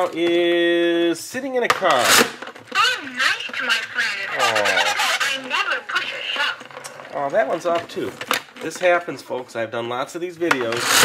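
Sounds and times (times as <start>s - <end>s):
garbled toy voice playback: 2.8s - 6.7s
toy lever rasp: 10.6s - 11.0s.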